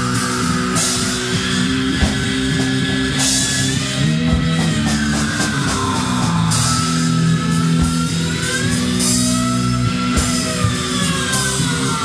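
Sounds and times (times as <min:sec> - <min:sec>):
distorted electric guitar: 0:00.0 - 0:12.0
drum kit: 0:00.0 - 0:12.0.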